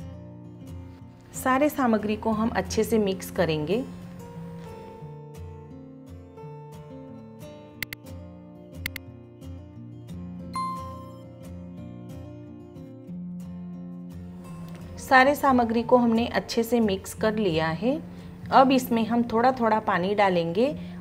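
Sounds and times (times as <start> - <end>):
soft background music: 0.0 - 21.0
notification bell ding: 10.6 - 11.3.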